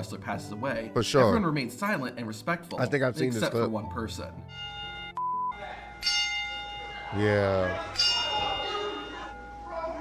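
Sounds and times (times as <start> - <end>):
ring bell ringing: 4.4 - 10.0.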